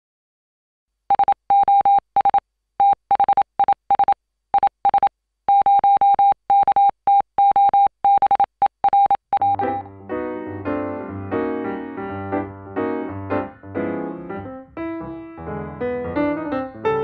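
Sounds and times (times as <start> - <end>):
morse code beeps: 1.1 - 9.9.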